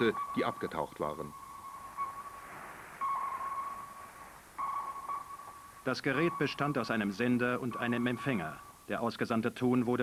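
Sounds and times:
sonar pings: 0.0 - 2.4, 3.0 - 8.7.

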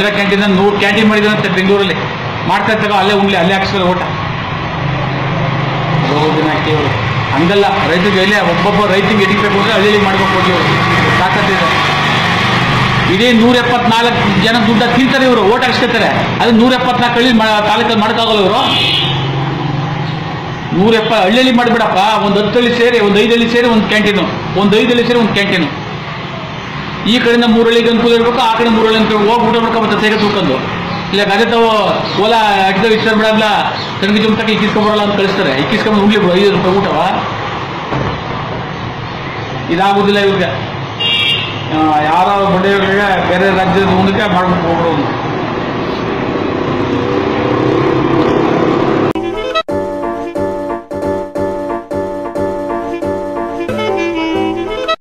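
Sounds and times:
man's voice: 0.0 - 4.1, 6.1 - 11.8
loud steady background hum: 0.0 - 49.7.

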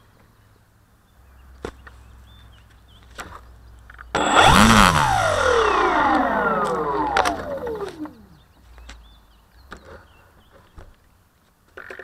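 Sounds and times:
electric motor and propeller whine: 4.2 - 8.4.

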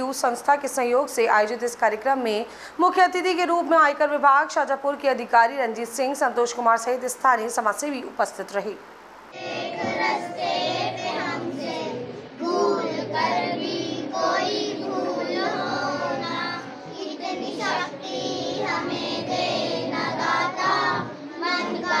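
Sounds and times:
children singing together: 9.3 - 22.0.

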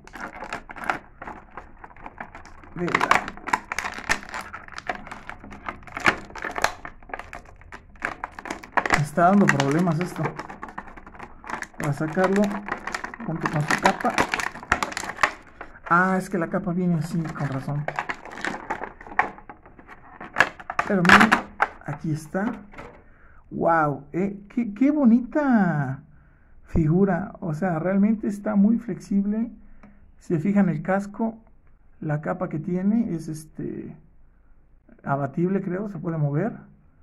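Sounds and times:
plastic packaging crinkling: 0.0 - 23.1.

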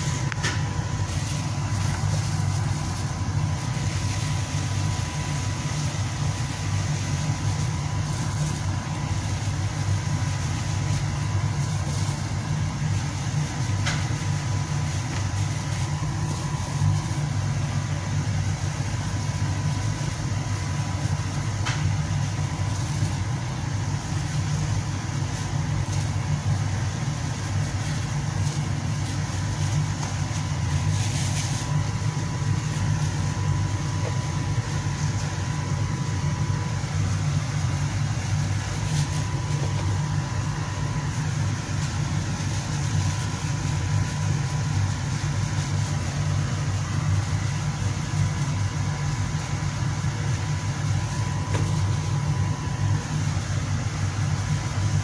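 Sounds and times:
low machine hum: 0.0 - 55.0.

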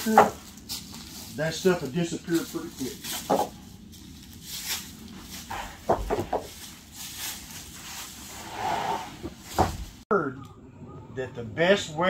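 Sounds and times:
wooden strips knocking and clattering: 0.0 - 0.6, 3.0 - 3.7, 5.5 - 6.8, 9.5 - 10.0.

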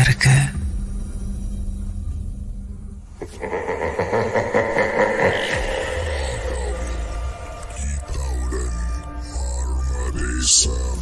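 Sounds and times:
low rumble: 1.5 - 10.1.

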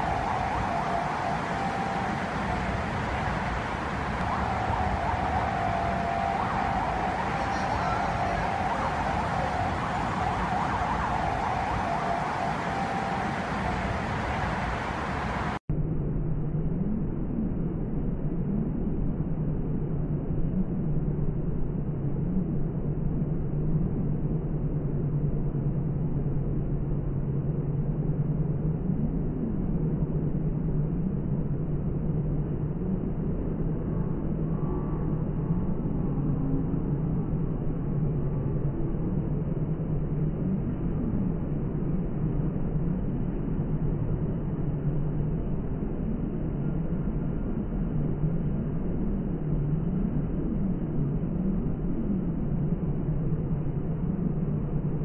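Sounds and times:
distant siren: 0.0 - 15.6
city street traffic: 0.0 - 15.7
low hum: 0.0 - 55.0.

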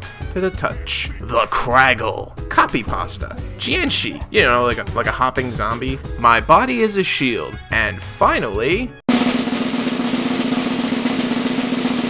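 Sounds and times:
snare drum roll: 9.1 - 12.0.

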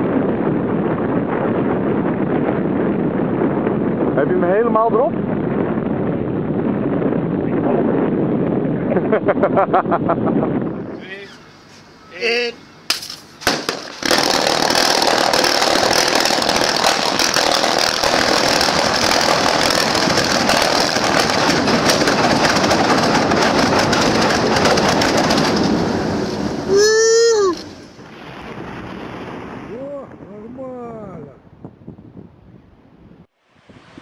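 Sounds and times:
underwater charge exploding: 13.4 - 26.8, 27.4 - 30.3.

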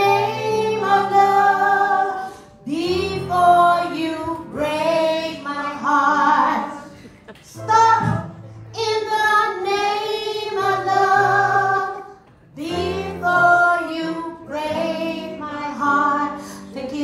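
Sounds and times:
women singing a pop song: 0.0 - 7.0, 7.6 - 17.0.

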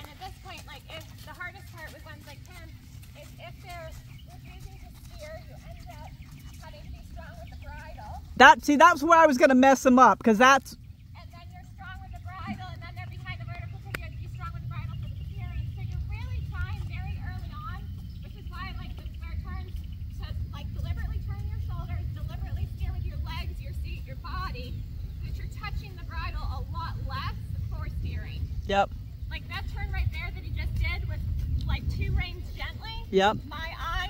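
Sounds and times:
steady low rumble: 10.8 - 34.0.

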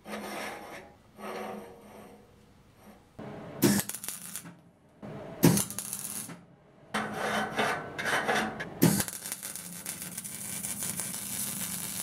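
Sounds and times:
metal scraping on metal: 0.0 - 3.0, 7.0 - 8.8.

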